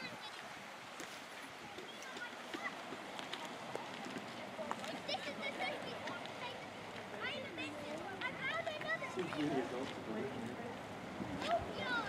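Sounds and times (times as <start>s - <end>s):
faint voices: 0.0s - 12.0s
outdoor background hiss: 0.0s - 12.0s.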